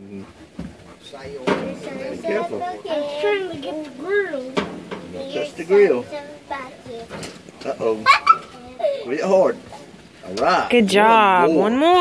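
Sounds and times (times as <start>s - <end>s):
low voices: 0.0s - 11.0s
metal tongs knocking on grill grate: 4.5s - 5.2s.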